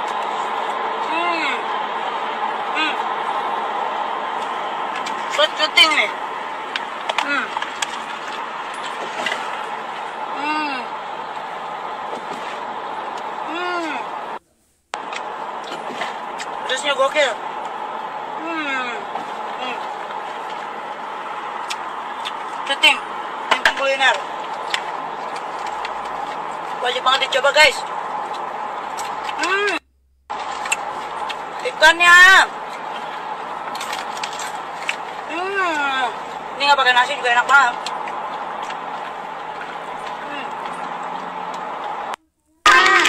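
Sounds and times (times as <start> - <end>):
car cabin road noise: 0.0 - 43.0.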